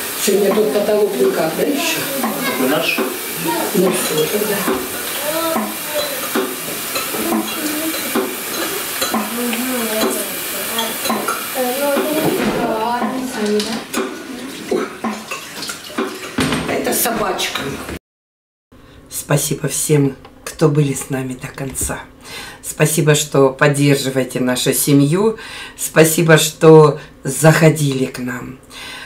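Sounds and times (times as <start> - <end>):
pots and lids clinking: 2.0 - 12.4.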